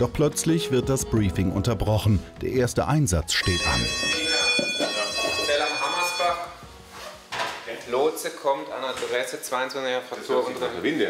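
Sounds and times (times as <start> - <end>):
man speaking: 0.0 - 6.5
buzzy electronic alarm tone: 3.4 - 6.6.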